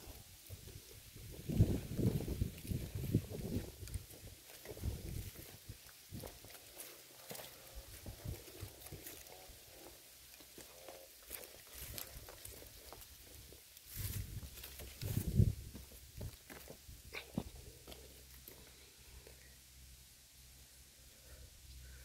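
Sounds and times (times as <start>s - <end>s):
footsteps on muddy bank: 1.3s - 18.7s.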